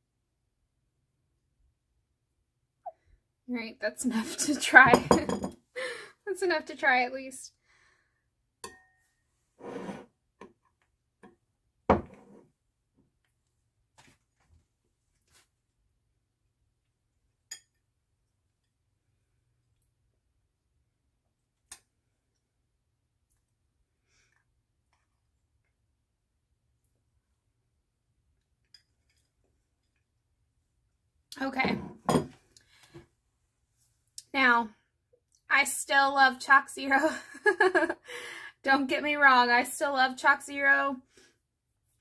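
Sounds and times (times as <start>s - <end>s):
metal spoon clinking on ceramic plate: 8.6s - 9.0s.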